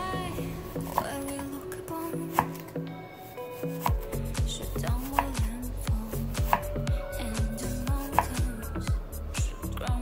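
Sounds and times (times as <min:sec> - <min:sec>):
background music with bass: 0:00.0 - 0:01.2, 0:03.8 - 0:10.0
knife chopping on wooden board: 0:03.6 - 0:04.1, 0:05.0 - 0:05.5, 0:06.4 - 0:06.7, 0:08.0 - 0:08.4.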